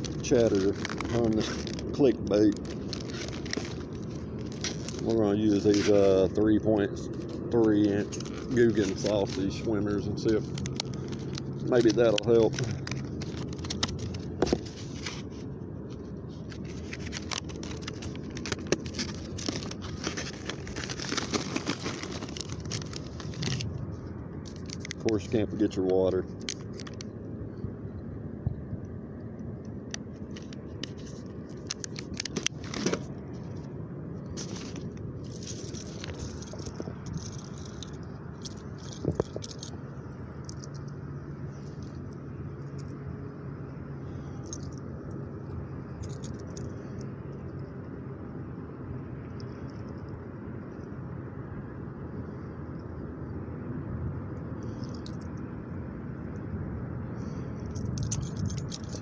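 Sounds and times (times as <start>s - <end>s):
rustling of bag and packaging: 0.0s - 27.1s, 30.1s - 39.8s, 57.6s - 59.0s
small metal jangles and clicks: 34.4s - 43.1s, 44.2s - 47.7s, 54.6s - 55.4s, 57.3s - 59.0s.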